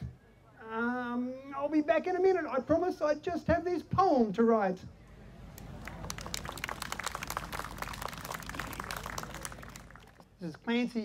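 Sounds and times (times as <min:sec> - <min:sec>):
audience applauding: 0:05.6 - 0:10.2.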